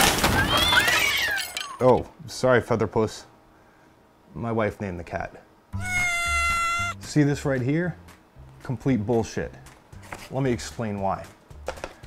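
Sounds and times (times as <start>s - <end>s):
cat yowling: 5.8s - 7.0s.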